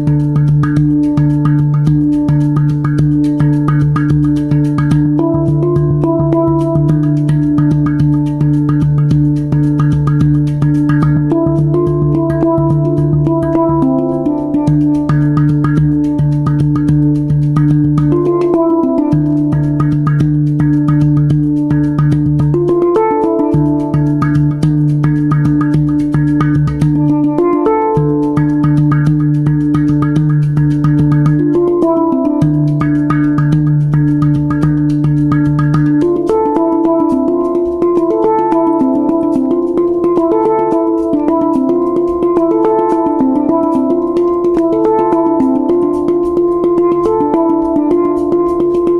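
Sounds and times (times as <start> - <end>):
handpan played by hand: 0.0 - 48.9.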